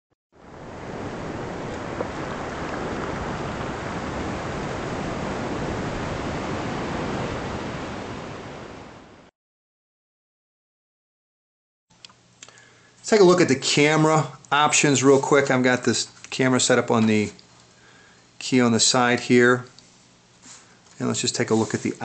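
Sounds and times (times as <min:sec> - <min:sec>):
ocean surf rushing: 0:00.4 - 0:09.3.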